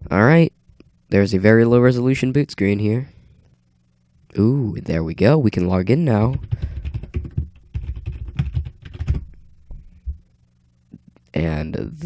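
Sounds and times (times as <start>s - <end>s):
faint low hum: 0.0s - 12.0s
computer keyboard typing: 6.2s - 9.4s.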